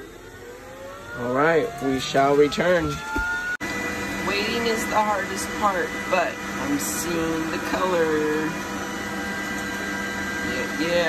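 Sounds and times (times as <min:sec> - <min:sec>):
laser engraver whirring hum: 0:00.0 - 0:11.0.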